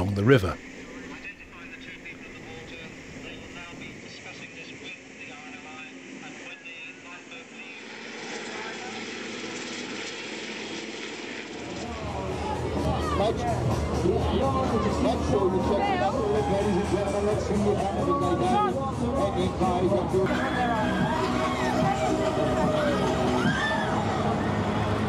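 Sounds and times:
faint voices: 0.0s - 9.8s, 11.6s - 25.0s
aircraft engine drone: 0.0s - 25.0s.

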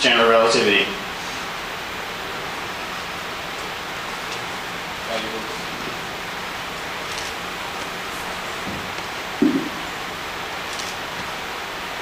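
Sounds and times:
background room hiss: 0.0s - 12.0s.

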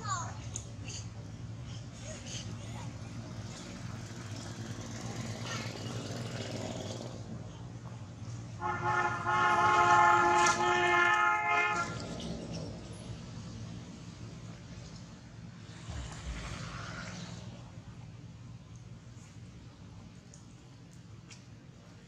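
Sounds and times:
low hum of traffic: 0.0s - 22.0s
vehicle horn steady note: 8.6s - 12.0s.

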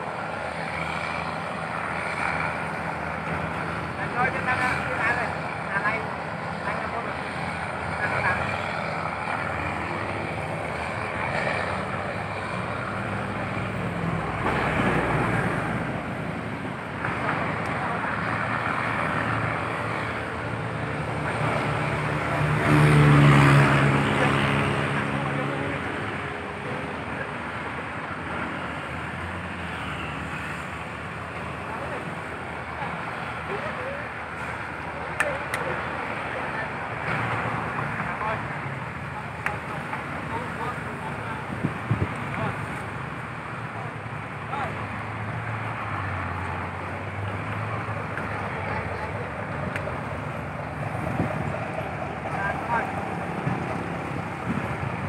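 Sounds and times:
steady road traffic: 0.0s - 55.0s
vehicle engine passing close: 0.0s - 55.0s.

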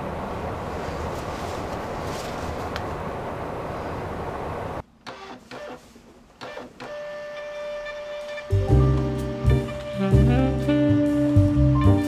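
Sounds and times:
label printer feeding labels: 5.1s - 8.5s
background music with bass: 8.5s - 12.0s.

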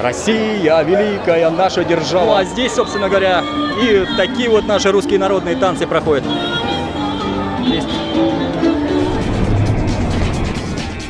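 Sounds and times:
music: 1.6s - 11.0s
low rushing whoosh: 8.9s - 11.0s.

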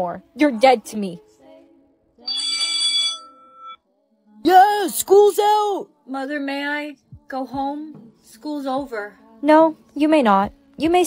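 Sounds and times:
school bell ringing: 2.3s - 3.8s.

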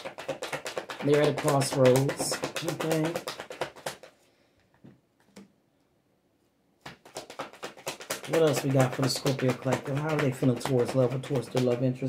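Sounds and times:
cards being shuffled: 0.0s - 4.2s, 6.8s - 12.0s.

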